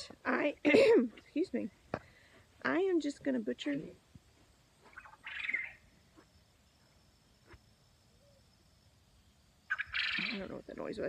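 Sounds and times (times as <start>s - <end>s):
high-pitched bird-like call: 9.7s - 10.5s.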